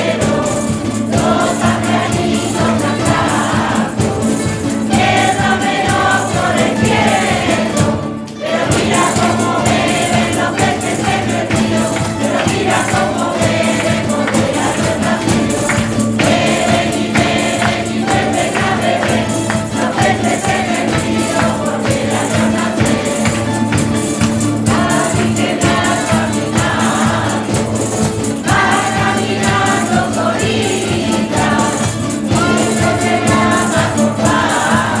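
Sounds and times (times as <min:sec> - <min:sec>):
choir singing a carol: 0:00.0 - 0:35.0
light percussion: 0:00.0 - 0:35.0
strummed lutes and guitars: 0:00.0 - 0:35.0.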